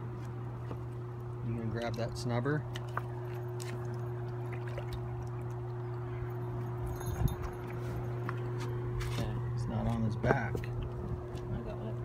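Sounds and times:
steady low hum: 0.0 - 12.0
water sloshing at rocky bank: 0.3 - 9.0.

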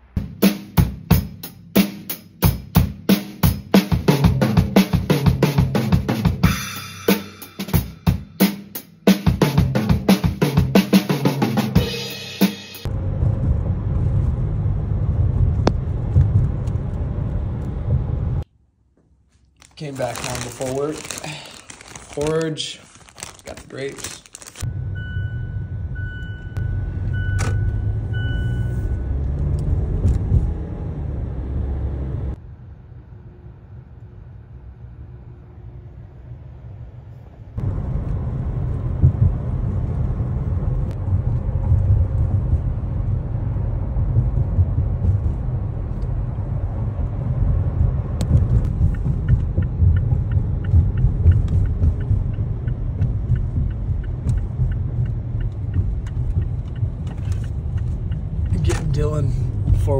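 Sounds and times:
engine and tyre rumble: 12.8 - 18.5, 24.0 - 59.9.

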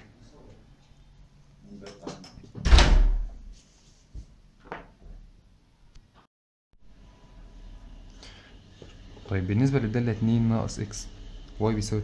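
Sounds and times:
door shutting with heavy thud: 2.6 - 3.4.

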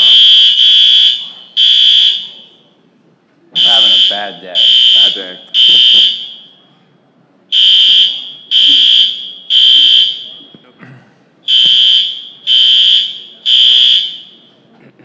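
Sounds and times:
fire alarm beeping: 0.0 - 2.8, 3.6 - 6.8, 7.5 - 10.6, 11.5 - 14.7.

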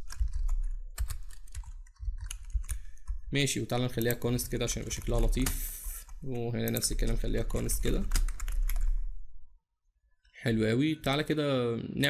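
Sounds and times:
computer keyboard typing: 0.0 - 9.1.

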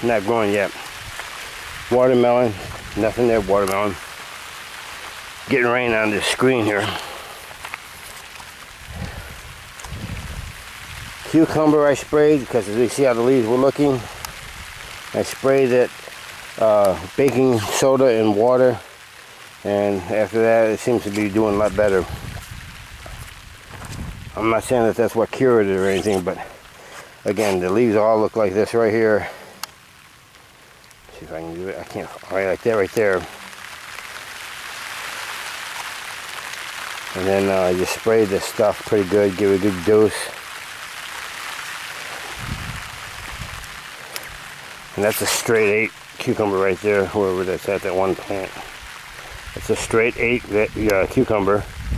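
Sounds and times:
light rain falling: 0.0 - 51.9
raindrops ticking on microphone: 0.0 - 51.9
muffled low thumps: 8.9 - 11.1, 22.0 - 24.4.

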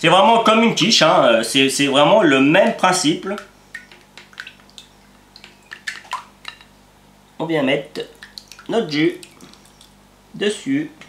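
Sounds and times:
spatula stirring wet batter: 2.9 - 6.7, 8.0 - 10.0.

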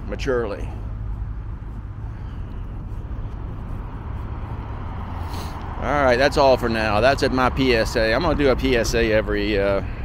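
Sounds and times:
low vehicle rumble: 0.0 - 10.0.

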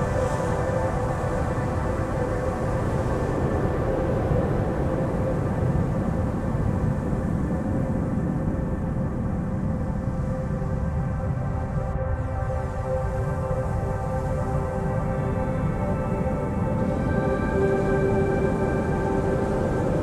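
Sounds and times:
ambient drone of held tones: 10.7 - 20.0.

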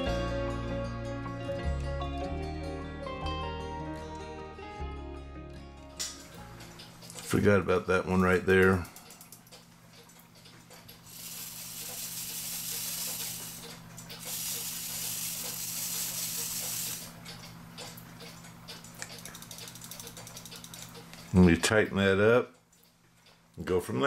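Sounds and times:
long hissing noises: 11.1 - 17.2.

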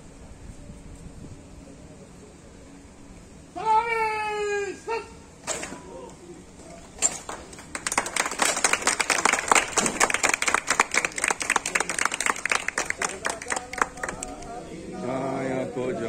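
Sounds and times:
people clapping: 7.1 - 14.6.

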